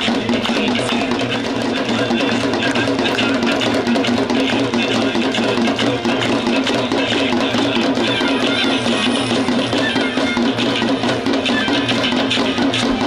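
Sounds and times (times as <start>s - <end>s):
hand drum rhythm: 0.0s - 13.0s
voices singing: 0.0s - 13.0s.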